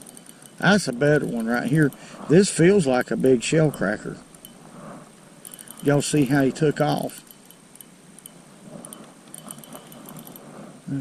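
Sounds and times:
fishing reel ticking: 0.0 - 10.5
low steady rush: 0.0 - 11.0.

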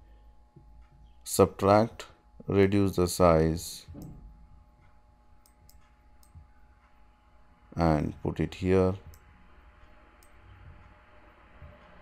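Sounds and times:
computer mouse click: 5.4 - 6.4.

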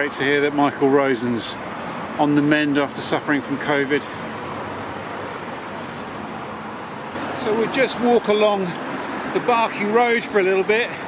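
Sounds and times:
street traffic rushing: 0.0 - 11.0.

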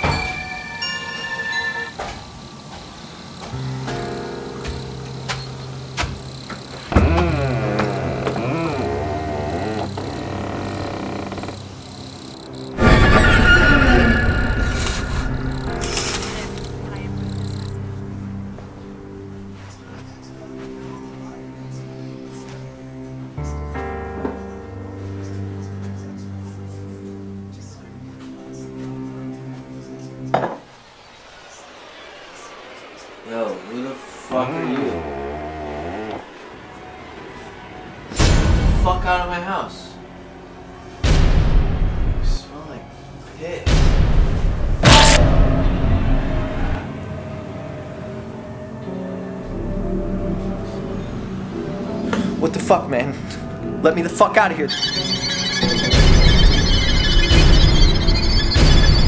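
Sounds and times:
dark droning film score: 0.0 - 59.0.

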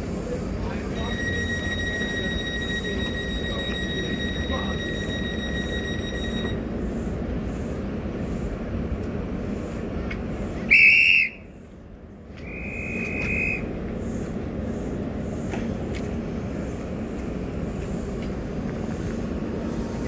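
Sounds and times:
diesel train engine idling: 0.0 - 20.0
steady high tone: 0.6 - 6.7
railway whistle blast: 0.9 - 6.6, 10.7 - 11.5, 12.4 - 13.7.

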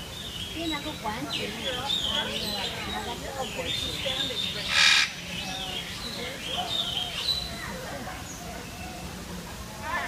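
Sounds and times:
birds calling: 0.0 - 9.2
people's voices: 0.5 - 10.0.

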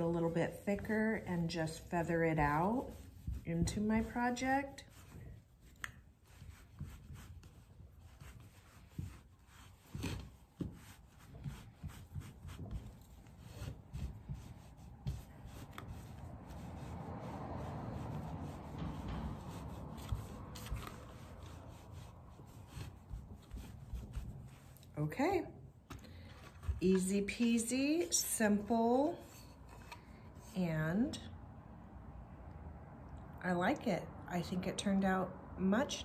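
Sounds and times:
cloth rag scrubbing wood: 0.0 - 25.0.

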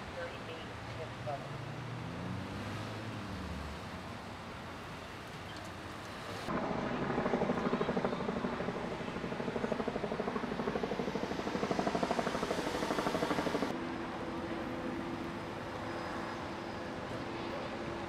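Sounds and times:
low outdoor hum: 3.7 - 18.0
pulsing mechanical drone: 6.5 - 13.7.

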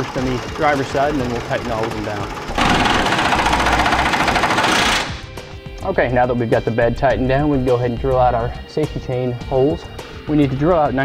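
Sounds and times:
power wrench rattling: 2.3 - 5.3.

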